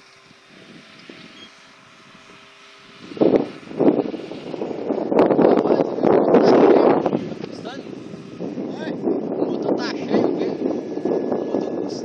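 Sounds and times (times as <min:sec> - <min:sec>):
model airplane motor drone: 0:00.0 - 0:12.0.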